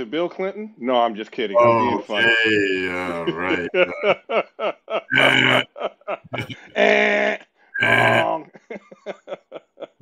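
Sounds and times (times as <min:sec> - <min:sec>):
man talking: 0:00.0 - 0:04.2, 0:05.1 - 0:05.6, 0:06.3 - 0:08.4
man making drawn-out vocal noises: 0:01.6 - 0:04.2, 0:05.1 - 0:05.7, 0:06.3 - 0:07.0, 0:07.8 - 0:08.3.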